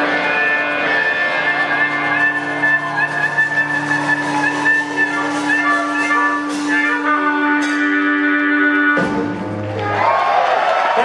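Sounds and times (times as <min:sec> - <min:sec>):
harmonica bending line: 0:00.0 - 0:09.8
live band playing: 0:00.0 - 0:10.4
drums: 0:00.0 - 0:11.0
guitar: 0:00.0 - 0:11.0.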